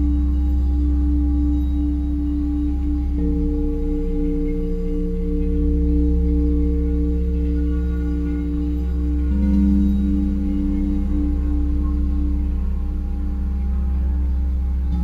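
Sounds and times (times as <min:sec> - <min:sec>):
deep steady drone: 0:00.0 - 0:15.0
higher singing bowl tone: 0:00.0 - 0:15.0
singing bowls ringing: 0:00.0 - 0:15.0.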